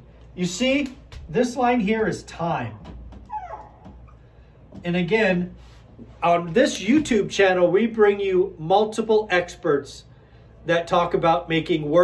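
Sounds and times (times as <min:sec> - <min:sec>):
marker squeaking on whiteboard: 0:03.1 - 0:04.2.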